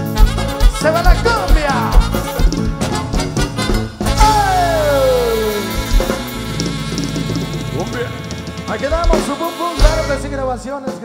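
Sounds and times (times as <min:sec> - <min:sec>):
loud drum hit: 0:00.0 - 0:10.3
cumbia band music: 0:00.0 - 0:11.0.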